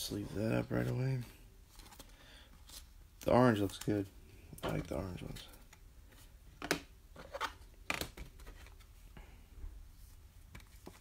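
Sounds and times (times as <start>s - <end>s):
plastic card sleeve rustling: 0.6s - 4.1s.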